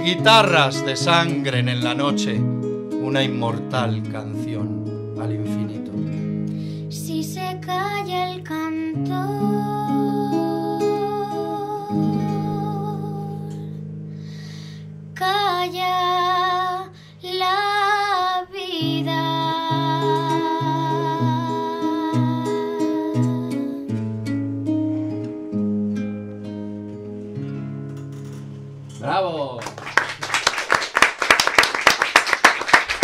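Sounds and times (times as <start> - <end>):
classical guitar plucking: 0.0 - 14.2, 18.6 - 29.3
wordless singing with vibrato: 7.0 - 13.8, 15.2 - 24.0.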